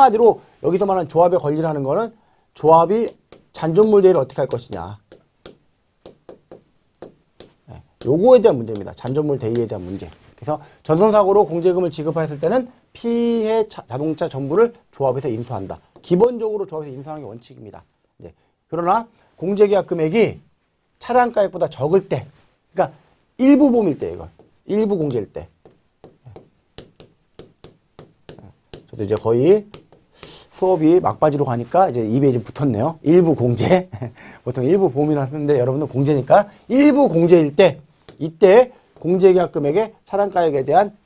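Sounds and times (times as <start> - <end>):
marker knocking on whiteboard: 2.9 - 9.7, 24.2 - 30.1, 38.0 - 38.4.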